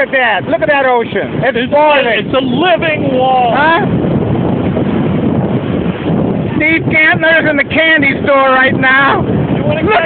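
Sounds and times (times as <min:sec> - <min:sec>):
surf breaking on beach: 0:00.0 - 0:10.0
wind buffeting microphone: 0:00.0 - 0:10.0.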